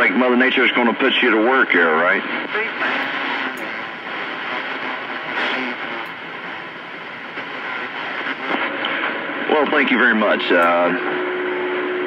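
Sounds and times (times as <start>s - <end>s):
radio static hiss: 2.4s - 10.8s.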